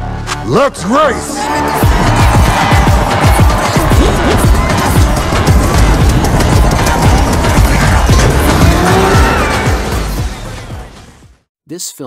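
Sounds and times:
loud music: 0.0 - 11.5
tires squealing: 1.4 - 10.9
car engines revving: 1.8 - 11.2.

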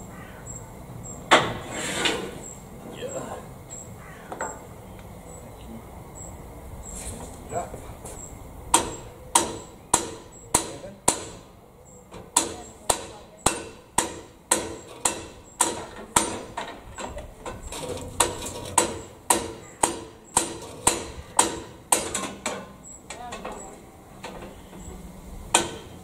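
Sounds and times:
hammer striking metal: 8.7 - 11.5, 12.3 - 16.8, 18.2 - 22.8, 25.5 - 26.0.

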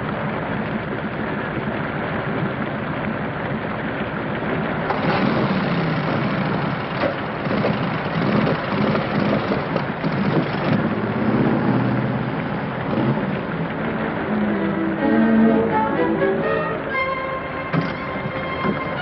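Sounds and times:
steady rain falling: 0.0 - 19.0
faint wavering low tones: 10.4 - 19.0.

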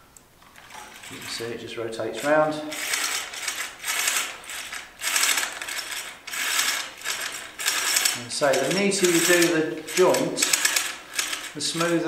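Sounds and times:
turret gear ring clicking: 2.7 - 12.0.

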